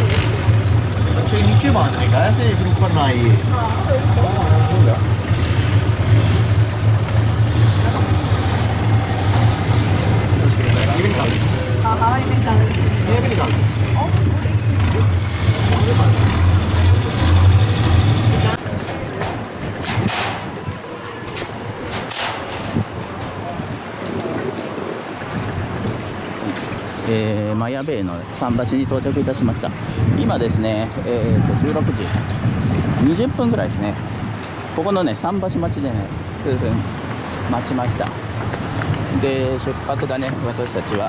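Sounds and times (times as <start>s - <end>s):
people talking: 0.0s - 5.3s, 7.6s - 22.0s, 27.0s - 32.3s, 33.0s - 34.0s, 34.8s - 36.8s, 37.5s - 38.2s, 39.1s - 41.0s
boat engine running: 0.0s - 20.8s.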